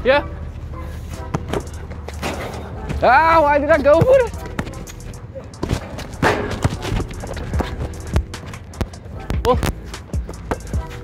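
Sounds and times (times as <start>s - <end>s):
basketballs bouncing on court: 3.8s - 4.8s, 5.6s - 10.8s.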